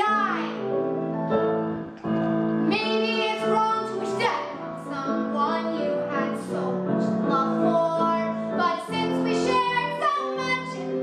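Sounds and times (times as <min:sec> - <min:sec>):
girl singing: 0:00.0 - 0:00.6, 0:02.7 - 0:11.0
piano accompaniment: 0:00.0 - 0:11.0.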